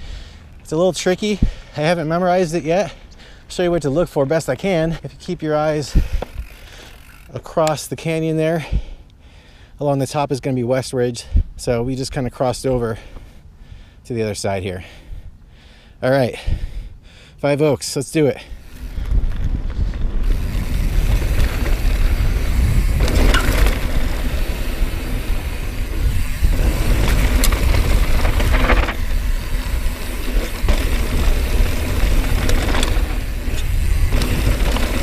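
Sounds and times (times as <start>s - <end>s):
bike tyres on loose dirt: 0.0s - 9.0s, 17.8s - 35.0s
wind rumble on microphone: 18.6s - 35.0s
bike knocks and rattles: 19.0s - 35.0s.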